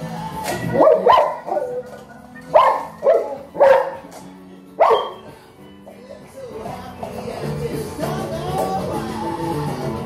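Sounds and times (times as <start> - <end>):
dog barking: 0.7 - 4.1, 4.8 - 5.3.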